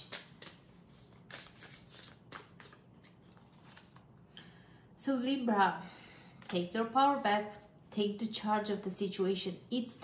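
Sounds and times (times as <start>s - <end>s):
cards being shuffled: 0.0s - 4.1s.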